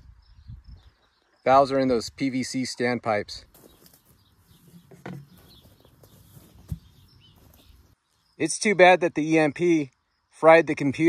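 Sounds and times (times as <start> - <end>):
faint bird chirps: 0.0 - 8.6
short dull thump: 6.5 - 7.0.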